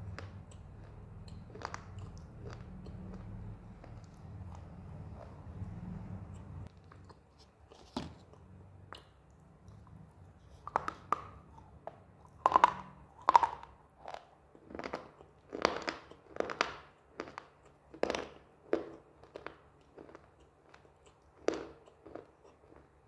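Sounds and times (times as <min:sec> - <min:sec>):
crunching and chewing: 0:00.0 - 0:23.0.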